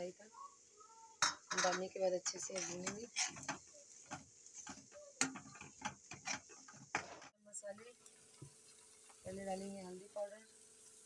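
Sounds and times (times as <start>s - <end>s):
metal spatula scraping pan: 1.3s - 7.4s.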